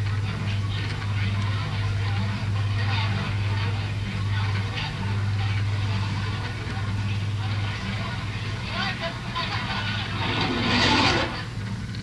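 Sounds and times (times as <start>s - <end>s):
faint voices: 0.2s - 11.6s
low hum: 9.3s - 11.8s.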